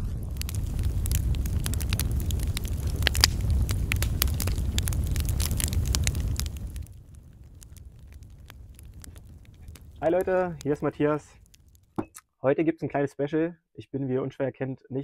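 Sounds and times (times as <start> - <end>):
fire crackling and burning: 0.0 - 12.0.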